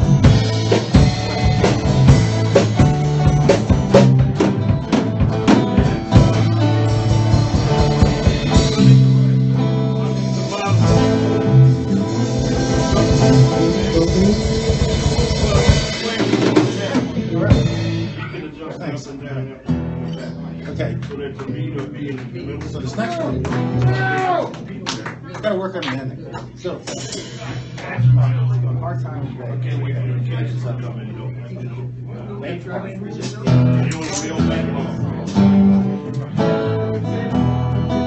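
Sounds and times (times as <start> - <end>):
live band music led by guitar: 0.0 - 25.4, 26.1 - 38.0
voices in the room: 0.0 - 38.0.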